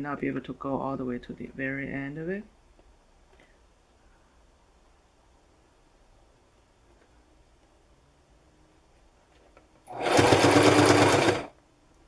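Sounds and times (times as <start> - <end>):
sewing machine stitching: 9.9 - 11.5.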